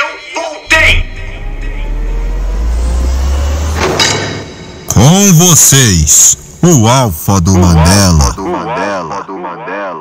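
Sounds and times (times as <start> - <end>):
whoosh: 0.7 - 6.9
deep bass rumble: 0.7 - 8.7.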